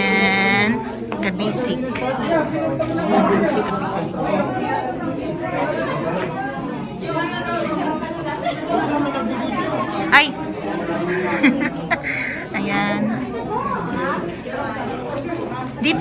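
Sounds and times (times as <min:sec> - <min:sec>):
crowd chatting in hall: 0:00.0 - 0:16.0.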